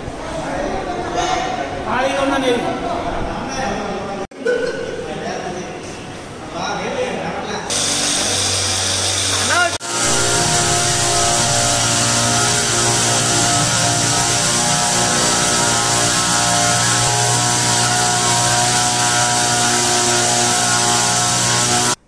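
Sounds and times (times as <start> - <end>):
spray hissing from hose: 7.7 - 22.0
sprayer motor and pump hum: 7.7 - 22.0.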